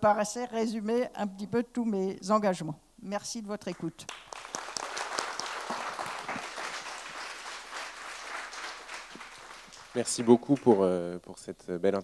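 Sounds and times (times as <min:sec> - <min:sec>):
audience applauding: 0:03.7 - 0:11.0.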